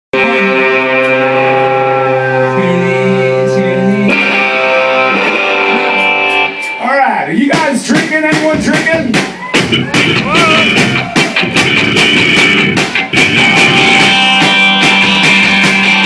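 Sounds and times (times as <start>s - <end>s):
distorted electric guitar chords: 0.1s - 7.0s, 9.6s - 16.0s
man talking into microphone: 6.8s - 9.2s.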